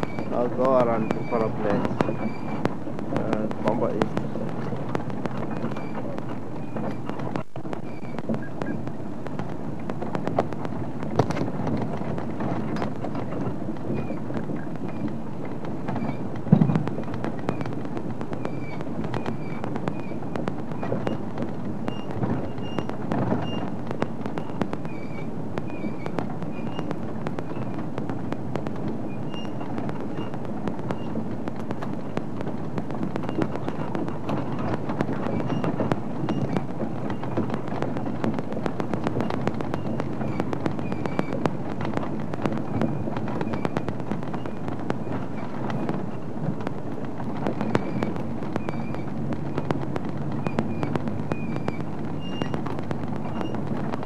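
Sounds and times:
bodywork rattling: 0.0s - 54.0s
vehicle engine and road rumble: 0.0s - 54.0s
heavy thump: 15.9s - 25.0s.

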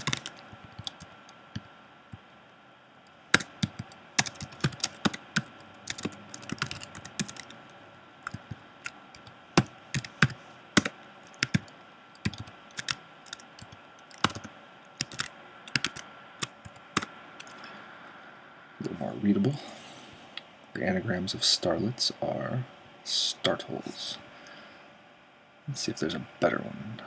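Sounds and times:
typing on computer keyboard: 0.0s - 1.1s, 3.4s - 7.5s, 8.2s - 17.6s.

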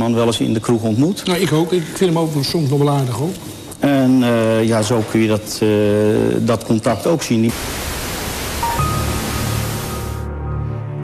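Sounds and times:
television static hiss: 0.0s - 10.3s
thin high tone: 8.6s - 10.3s
low music drone: 8.6s - 11.0s.

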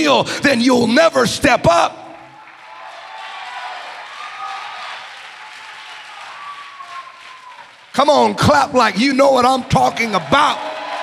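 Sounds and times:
congregation applauding: 2.1s - 11.0s.

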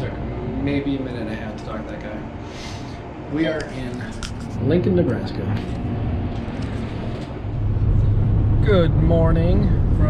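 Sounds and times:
steady noisy hum: 0.0s - 10.0s
truck road and engine noise: 4.1s - 10.0s
low rumble: 4.5s - 10.0s.

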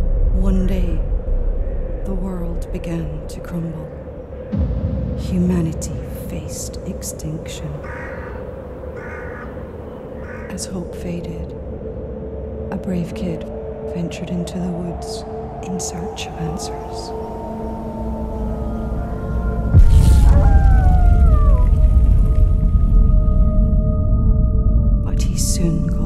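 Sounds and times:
steady low drone: 0.0s - 9.0s, 9.6s - 26.0s
loud cinematic hit: 4.5s - 6.8s, 19.7s - 24.6s
harsh crow-like caws: 7.8s - 10.6s.

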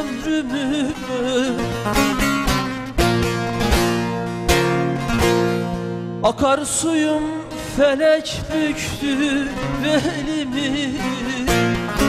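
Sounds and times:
acoustic guitar strumming: 0.0s - 12.0s
long-necked lute playing: 0.0s - 12.0s.

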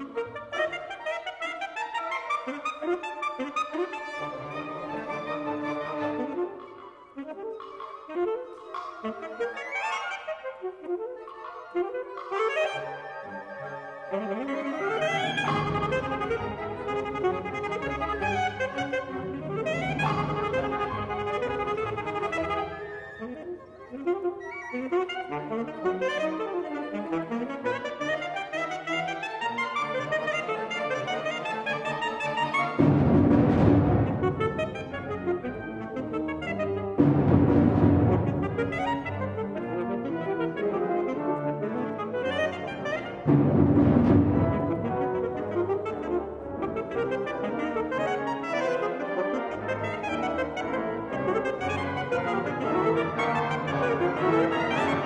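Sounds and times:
alto saxophone solo: 0.0s - 32.8s, 33.9s - 37.1s, 38.0s - 43.4s, 44.4s - 55.0s
wind ensemble music: 0.0s - 55.0s.

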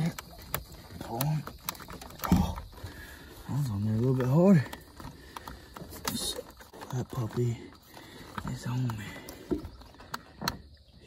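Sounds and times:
rubber hose clicking and rubbing: 0.0s - 10.7s.

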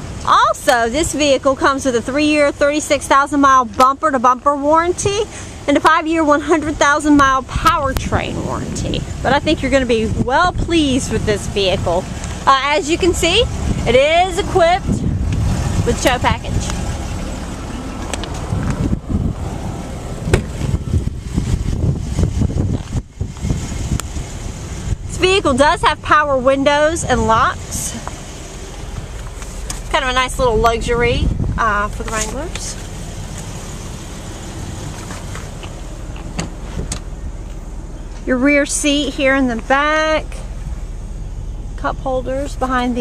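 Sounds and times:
car engine idling: 0.0s - 43.0s
wind rumble on microphone: 7.0s - 33.0s.

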